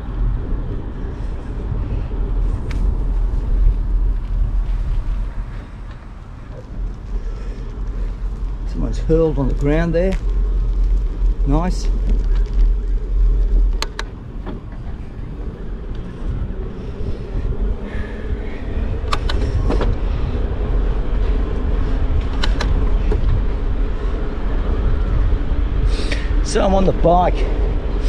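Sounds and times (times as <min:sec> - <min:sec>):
bicycle tyres on concrete: 0:00.0 - 0:28.0
wind on microphone: 0:00.0 - 0:28.0
sharp clicks: 0:13.7 - 0:14.1, 0:22.2 - 0:22.8.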